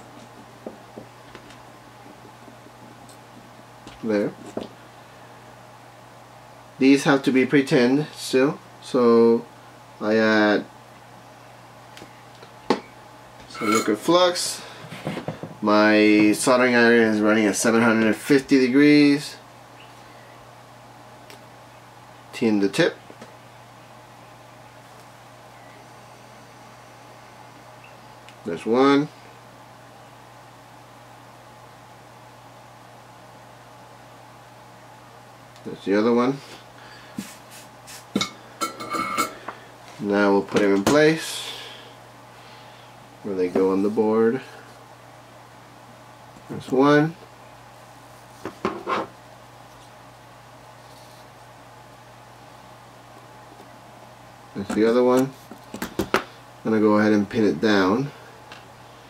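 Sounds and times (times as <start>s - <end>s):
low steady hum: 0.0s - 59.0s
metallic ringing tone: 12.8s - 14.1s.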